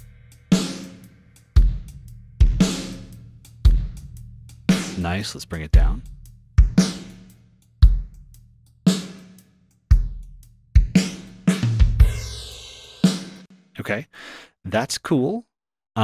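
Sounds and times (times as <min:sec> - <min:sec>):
drum kit loop: 0:00.0 - 0:13.5.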